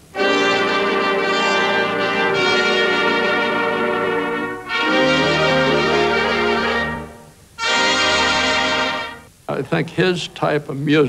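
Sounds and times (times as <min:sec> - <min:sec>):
brass section playing held chords: 0:00.0 - 0:09.3.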